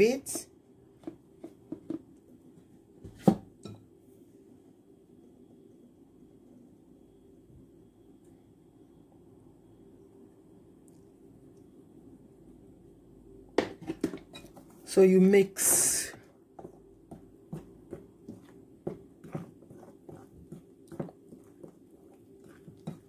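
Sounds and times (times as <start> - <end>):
faint low hum of sifting: 0.5 - 23.0.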